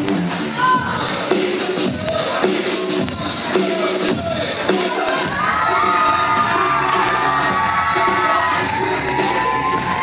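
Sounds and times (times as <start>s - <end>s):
dance music with steady beat: 0.0s - 10.0s
children cheering and shouting: 4.8s - 10.0s.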